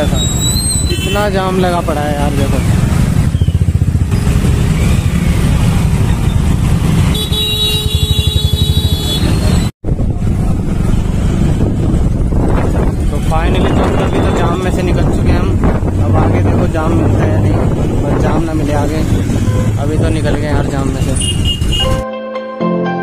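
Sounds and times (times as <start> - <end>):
vehicle horn: 0.9 - 1.3, 7.0 - 9.6, 21.2 - 22.1
motorcycle engine running: 1.9 - 13.5.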